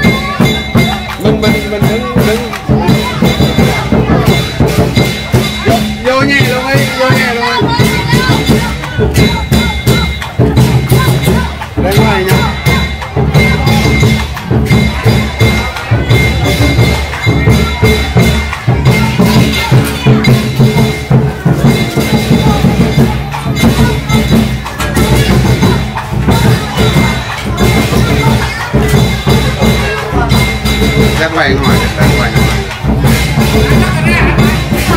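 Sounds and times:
clashing cymbals: 0.0s - 34.9s
drum beaten rapidly: 0.0s - 34.9s.

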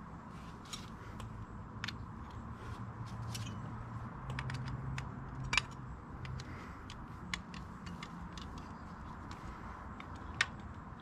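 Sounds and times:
low steady hum: 0.0s - 11.0s
clicks of hand tools and parts: 0.6s - 2.4s, 3.1s - 11.0s.

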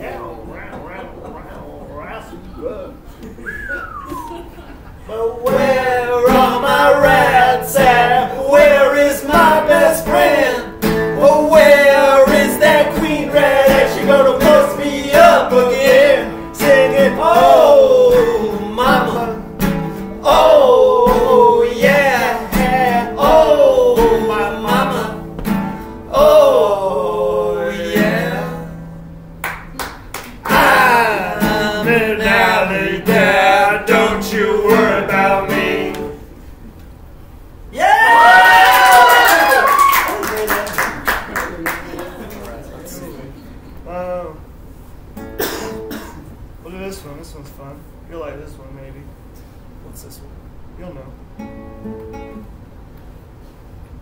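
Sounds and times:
wordless vocals: 2.0s - 28.9s, 30.4s - 36.3s
acoustic guitars: 3.0s - 36.5s, 42.9s - 47.0s, 51.2s - 54.0s
person singing: 5.1s - 19.5s, 20.2s - 25.3s, 26.1s - 28.8s, 30.5s - 36.2s.

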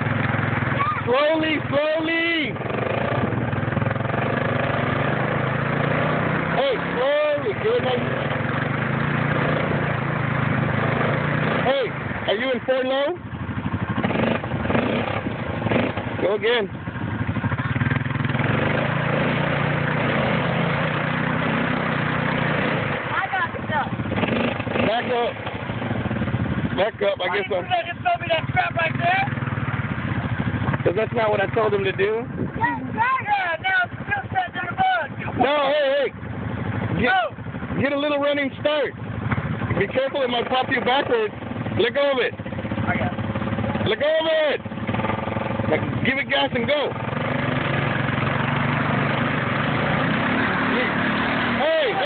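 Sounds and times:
atv engine pulsing: 0.0s - 52.0s
person shouting: 0.8s - 1.4s, 32.6s - 35.2s.

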